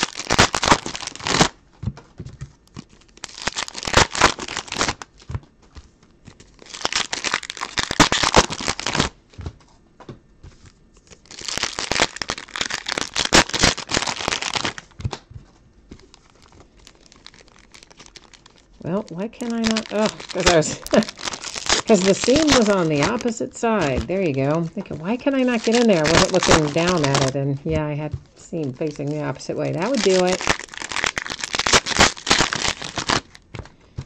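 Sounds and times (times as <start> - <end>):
foil wrapper crinkling: 0.0 - 1.6, 2.2 - 9.2, 10.6 - 15.3, 15.9 - 34.0.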